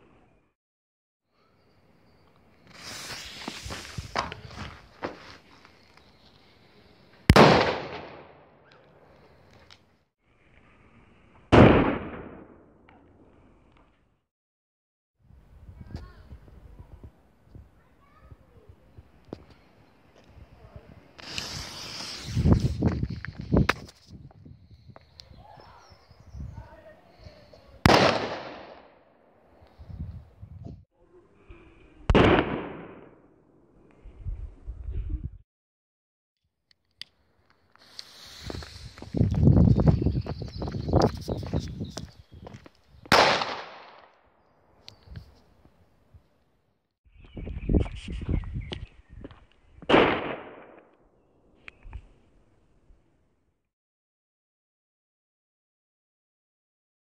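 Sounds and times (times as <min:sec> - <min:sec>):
burning fuse hissing: 0:02.6 - 0:04.6, 0:21.2 - 0:23.6, 0:37.7 - 0:39.8
firecracker bang with echo: 0:07.3 - 0:08.4, 0:27.8 - 0:28.9, 0:32.1 - 0:33.2, 0:43.1 - 0:44.0, 0:49.9 - 0:50.8.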